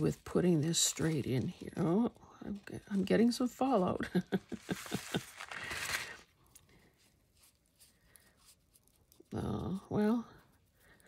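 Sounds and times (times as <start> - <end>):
lace pouch rustling: 4.4 - 9.2.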